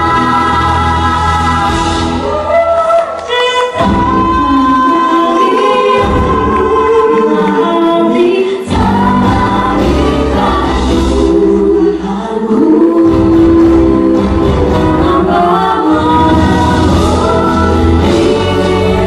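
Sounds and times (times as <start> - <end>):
live band with keyboard: 0.0 - 19.0
women singing in harmony: 0.0 - 19.0.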